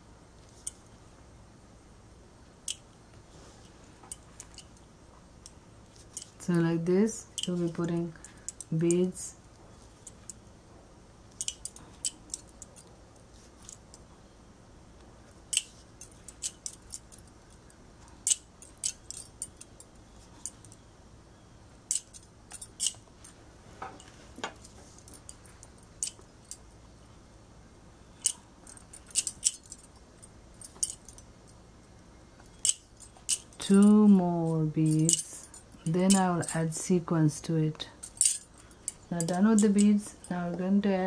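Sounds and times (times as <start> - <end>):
bangles clinking: 2.6 - 2.9, 3.6 - 10.5, 11.3 - 14.1, 15.3 - 20.9, 21.7 - 27.1, 28.0 - 36.8, 37.9 - 40.4.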